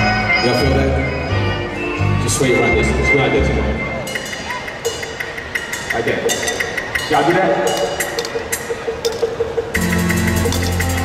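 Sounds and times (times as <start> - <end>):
fast ticking beat: 4.1 - 11.0
bass line and chords: 9.8 - 11.0.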